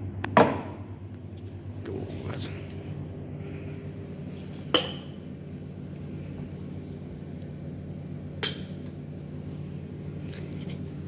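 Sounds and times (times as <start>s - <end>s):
low hum of cafe machinery: 0.0s - 11.0s.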